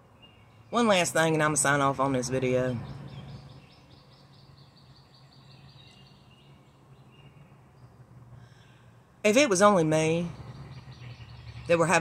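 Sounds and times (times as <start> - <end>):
bird chirping rapidly: 0.1 - 8.1, 9.3 - 12.0.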